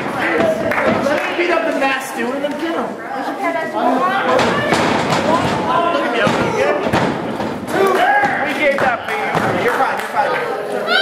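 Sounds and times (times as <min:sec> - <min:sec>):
spectators shouting and talking: 0:00.0 - 0:11.0.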